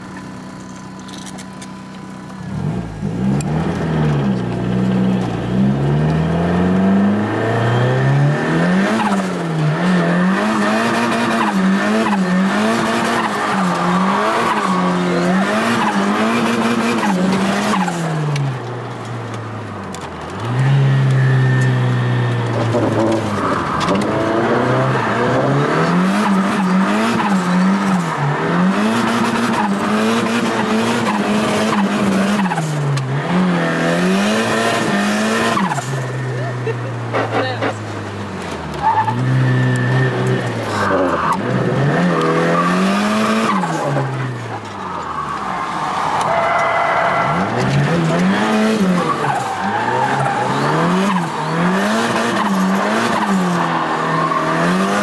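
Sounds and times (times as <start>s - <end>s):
car engine revving: 2.0s - 55.0s
tyres squealing: 44.5s - 55.0s.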